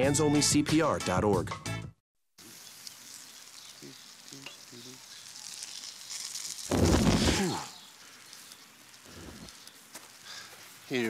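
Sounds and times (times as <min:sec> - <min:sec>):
grill fire sizzling and crackling: 0:02.4 - 0:11.0
flames whooshing: 0:02.8 - 0:11.0.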